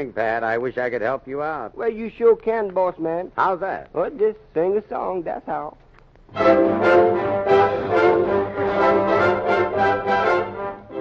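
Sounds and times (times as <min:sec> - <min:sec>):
orchestra playing: 0:06.3 - 0:11.0.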